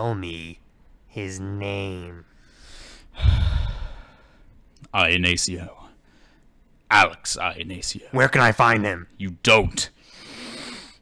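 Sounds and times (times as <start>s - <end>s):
man sighing heavily: 3.1s - 4.3s.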